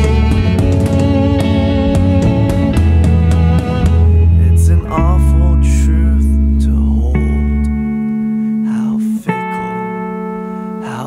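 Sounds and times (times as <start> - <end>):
violin long bowed notes: 0.0 - 10.6
backing music: 0.0 - 11.0.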